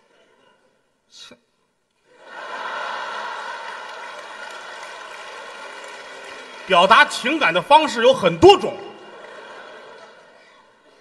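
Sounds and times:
audience applauding: 2.2 - 7.9, 8.6 - 10.4.

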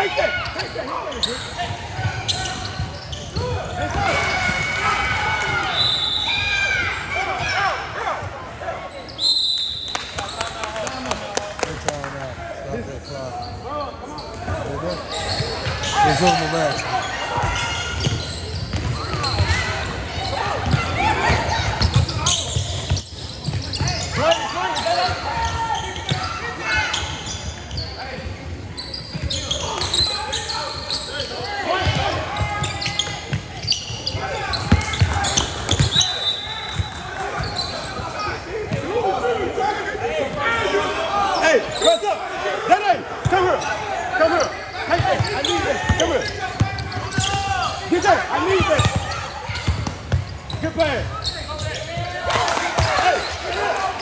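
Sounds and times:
shouts and chatter: 0.0 - 11.6, 12.3 - 54.0.

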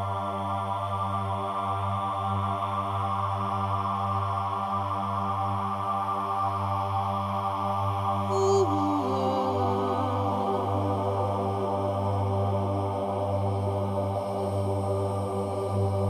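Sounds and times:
meditative music with low drone: 0.0 - 16.0.

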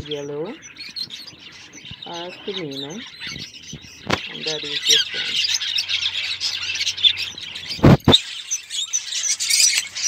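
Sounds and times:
budgerigars chirping and chattering: 0.0 - 10.0.

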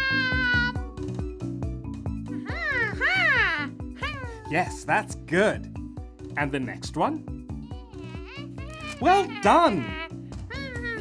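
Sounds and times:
cartoon animal call: 0.0 - 0.8, 2.5 - 4.4, 7.7 - 11.0
light background music with beat: 0.0 - 11.0.

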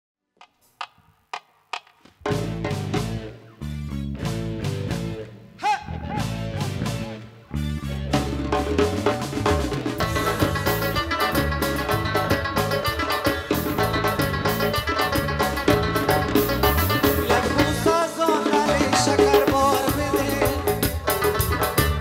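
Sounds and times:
pop band playing: 2.2 - 22.0.

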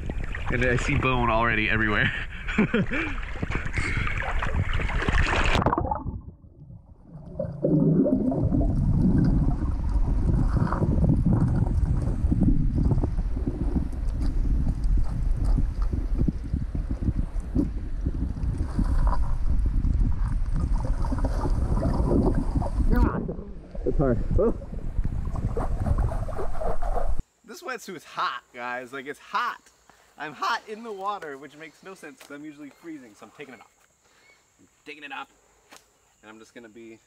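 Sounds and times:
water splashing: 0.0 - 1.6, 2.8 - 27.2
gravel ticking underwater: 2.9 - 27.2.

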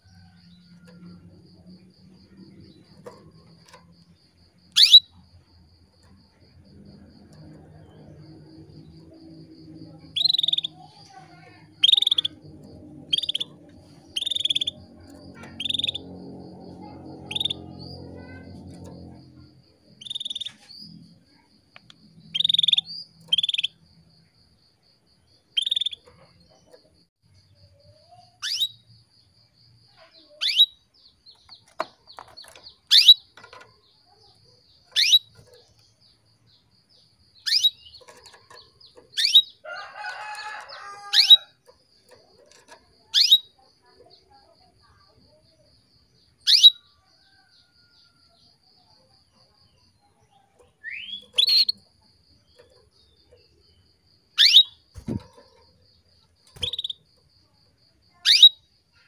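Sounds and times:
canary chirping: 0.1 - 23.8, 25.4 - 27.0, 28.1 - 28.9, 30.1 - 45.1, 46.2 - 48.1, 48.8 - 57.5, 58.1 - 59.0.

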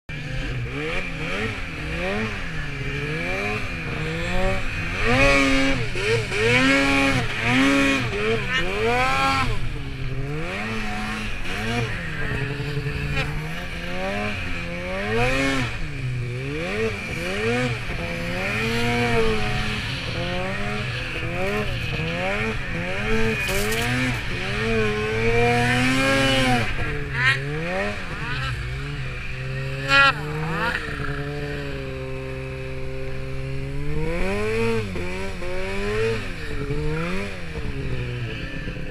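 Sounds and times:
snowmobile engine revving: 0.1 - 38.9.

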